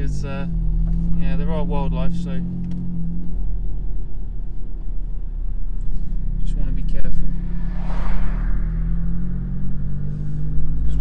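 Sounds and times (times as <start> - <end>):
car engine running at low speed: 0.0 - 11.0
passing car rushing: 5.8 - 11.0.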